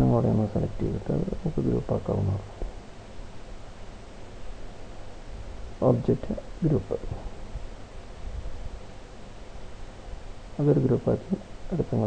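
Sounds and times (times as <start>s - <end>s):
faint room noise: 0.0s - 12.0s
man murmuring: 5.8s - 7.4s, 10.6s - 12.0s.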